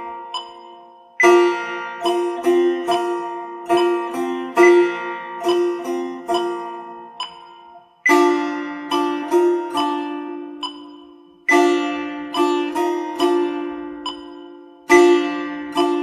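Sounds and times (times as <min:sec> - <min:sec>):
plucked long-necked lute: 0:00.0 - 0:16.0.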